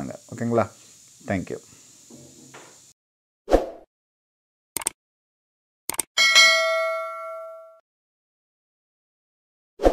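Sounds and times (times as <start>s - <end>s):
bright bell ding: 6.2s - 7.8s.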